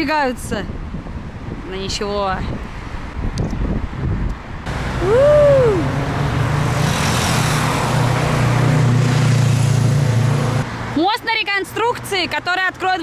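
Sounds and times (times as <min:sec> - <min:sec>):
car and motorcycle engines: 0:04.6 - 0:11.0
rising and falling tone: 0:04.7 - 0:10.6
vehicle passing: 0:04.7 - 0:11.0.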